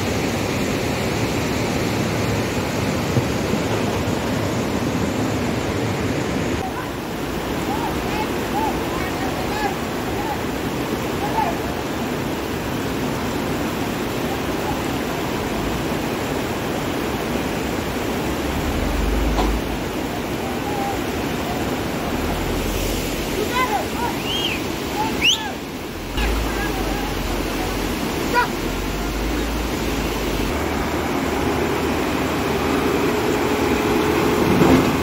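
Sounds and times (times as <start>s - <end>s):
floodwater rushing over rocks: 0.0s - 35.0s
distant shouts: 6.6s - 11.9s, 19.9s - 22.6s, 23.3s - 29.7s.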